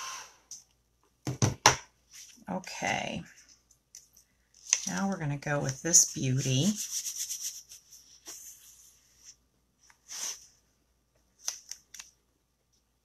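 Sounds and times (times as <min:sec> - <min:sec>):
plastic sheet rustling and crinkling: 0:04.6 - 0:08.9.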